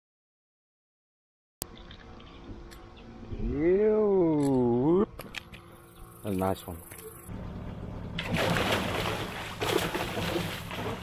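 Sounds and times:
steady low hum: 1.6 - 11.0
fish thrashing in water: 8.2 - 11.0.

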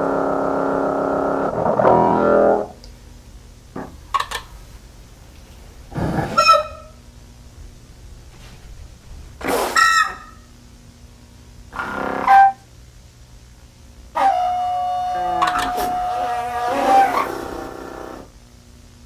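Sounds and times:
blown pipe honking: 14.2 - 18.1.

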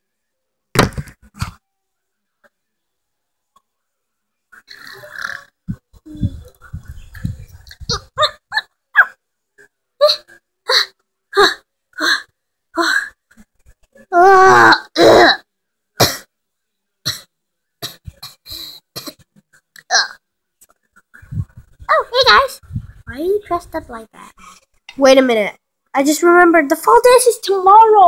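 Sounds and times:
child's wavering cries: 14.1 - 15.4.

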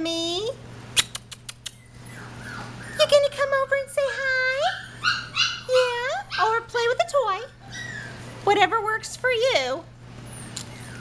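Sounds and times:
puppy whimpering: 1.3 - 6.8, 7.4 - 8.4, 10.2 - 11.0.

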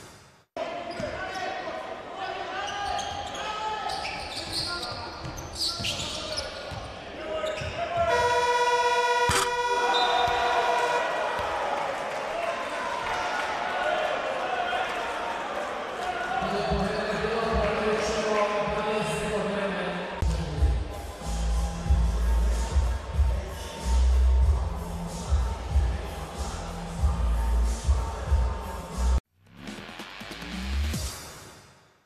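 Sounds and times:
buzzer horn tone: 8.1 - 11.0
players and spectators voices: 9.7 - 29.2.

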